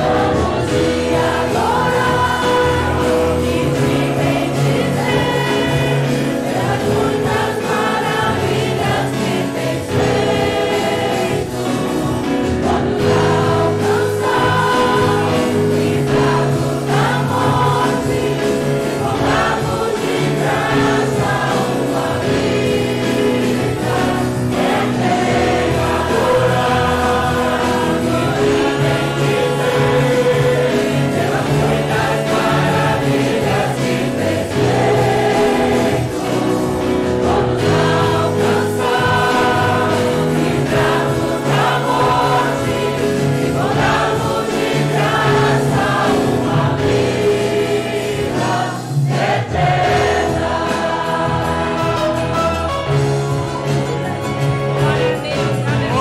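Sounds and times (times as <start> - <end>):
acoustic guitars: 0.0 - 56.0
congregation singing: 0.0 - 56.0.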